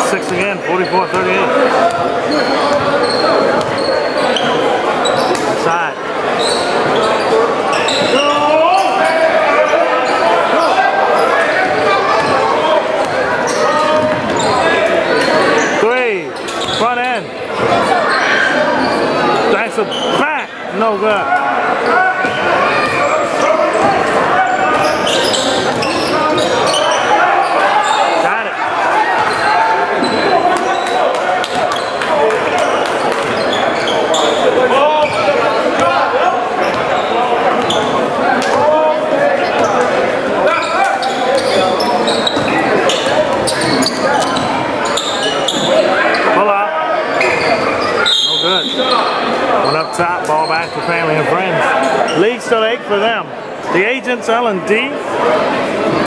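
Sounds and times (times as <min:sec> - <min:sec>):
echoing voices of crowd: 0:00.0 - 0:56.0
basketball bouncing on wooden court: 0:03.5 - 0:03.8, 0:13.9 - 0:14.4.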